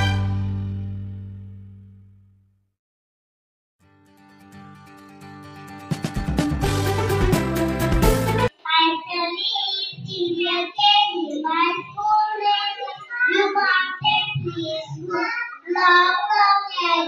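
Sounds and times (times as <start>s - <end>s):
music: 0.0s - 2.5s, 3.8s - 8.6s.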